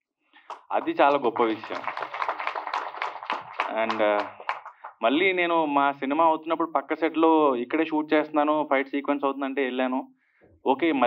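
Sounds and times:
small group applauding: 0:00.4 - 0:05.2.

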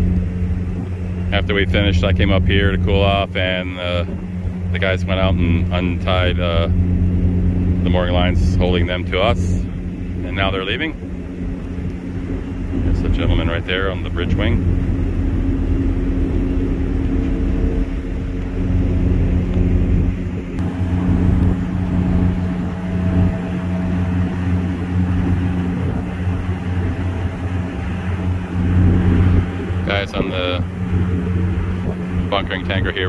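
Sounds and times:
ship diesel engines droning: 0:00.0 - 0:33.0
wind noise on microphone: 0:00.0 - 0:33.0.

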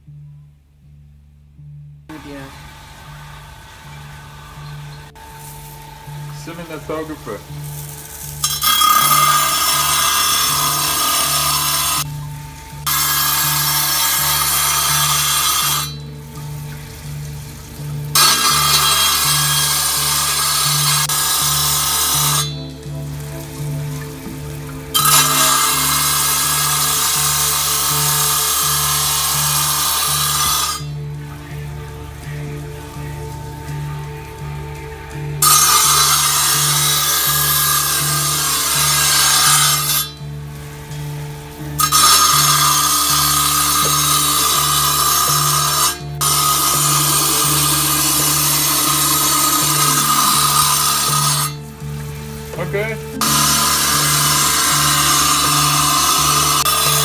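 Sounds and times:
steady low hum: 0:00.0 - 0:57.0
glass grinding on spinning wheel: 0:04.7 - 0:31.0, 0:35.4 - 0:40.2, 0:41.7 - 0:51.8, 0:53.1 - 0:57.0.

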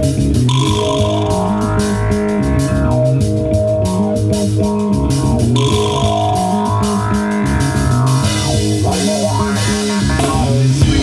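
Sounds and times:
drum kit cymbal beat: 0:00.0 - 0:11.0
electric bass riff: 0:00.0 - 0:11.0
electric guitar: 0:00.0 - 0:11.0.

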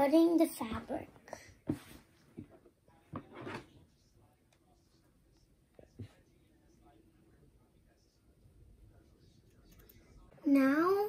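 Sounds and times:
soft breathy sound: 0:01.2 - 0:02.1.

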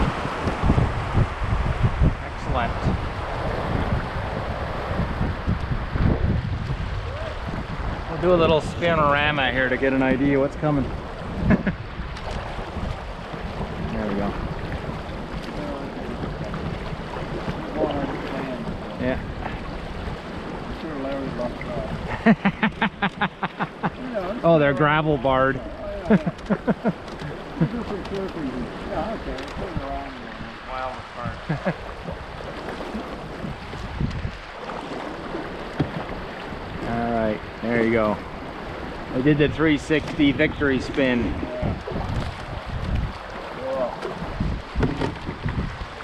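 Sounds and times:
paddle strokes splashing: 0:00.0 - 0:46.0
river current rushing: 0:00.0 - 0:46.0
person's voice: 0:24.0 - 0:26.4.

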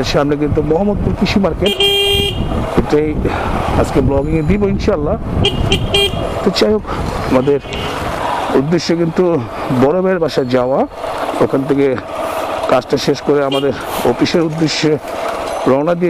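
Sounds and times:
street traffic: 0:00.0 - 0:16.0
vehicle horn honking: 0:01.6 - 0:02.6, 0:05.4 - 0:06.3, 0:07.3 - 0:08.0, 0:13.5 - 0:14.0
person talking: 0:06.4 - 0:12.1, 0:12.7 - 0:15.0, 0:15.6 - 0:16.0.

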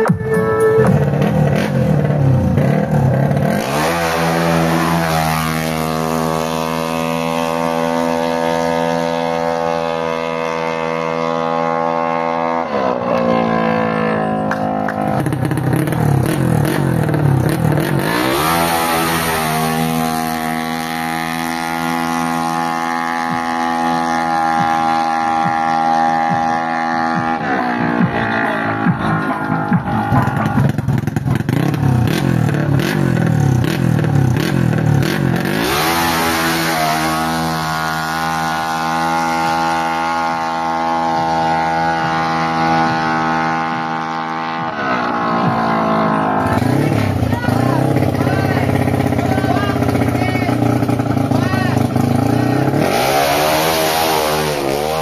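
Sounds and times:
scooter engine revving: 0:00.0 - 0:55.0.

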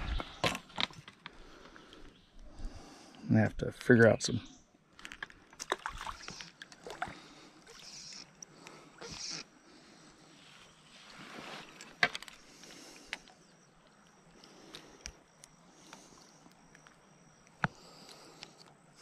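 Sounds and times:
faint rustling of fishing line: 0:05.0 - 0:19.0.

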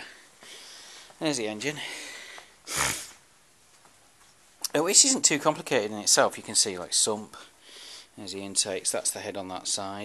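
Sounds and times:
sharp breath through nose: 0:02.0 - 0:03.2, 0:07.6 - 0:08.1.

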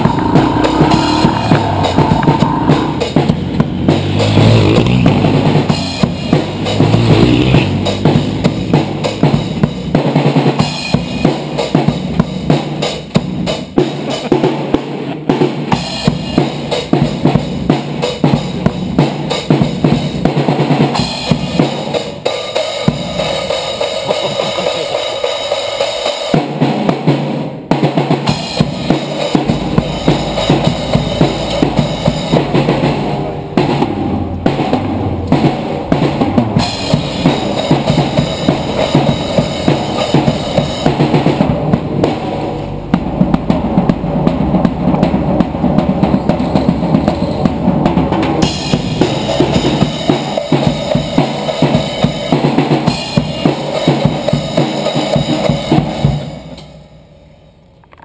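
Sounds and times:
bass drum: 0:00.0 - 0:21.8, 0:28.3 - 0:52.2
snare drum: 0:00.0 - 0:56.8
cymbals: 0:00.0 - 0:57.6.

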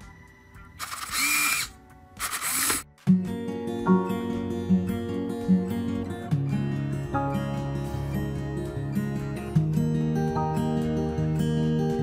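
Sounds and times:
small electric motor whirring: 0:00.8 - 0:02.8.

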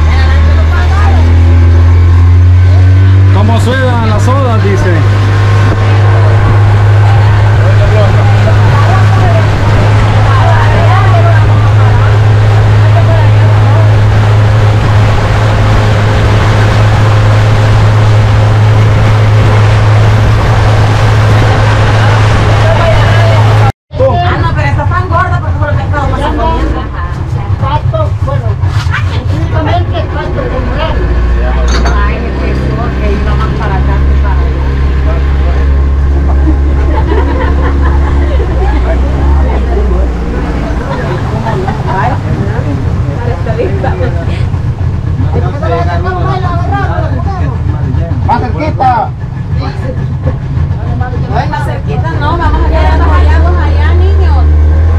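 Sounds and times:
boat motor running: 0:00.0 - 0:54.9
voices talking: 0:00.0 - 0:54.9
water rushing along hull: 0:00.0 - 0:54.9.

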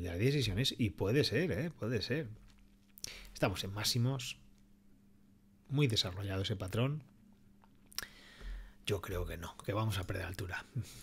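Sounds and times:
man speaking: 0:00.0 - 0:02.4, 0:03.4 - 0:04.4, 0:05.7 - 0:07.1, 0:08.9 - 0:11.0
soft breath in: 0:08.0 - 0:08.8.

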